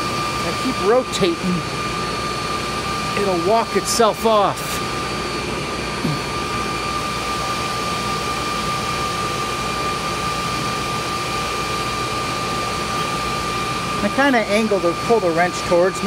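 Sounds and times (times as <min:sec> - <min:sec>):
motor whirring with high whine: 0:00.0 - 0:16.0.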